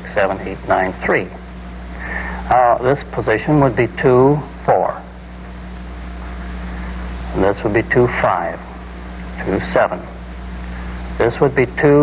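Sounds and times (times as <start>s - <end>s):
film soundtrack hiss: 0.0s - 12.0s
low constant hum: 0.0s - 12.0s.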